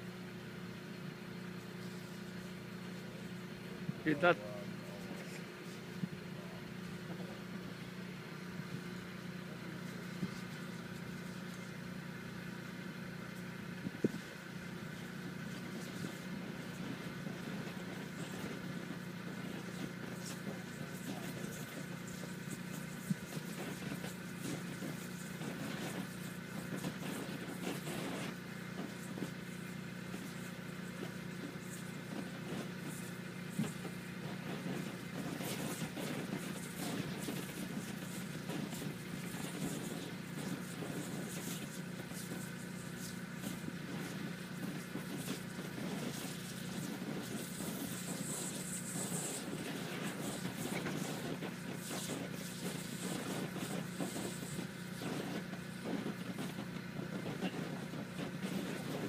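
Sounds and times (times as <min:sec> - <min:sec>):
low engine hum: 0:00.0 - 0:59.0.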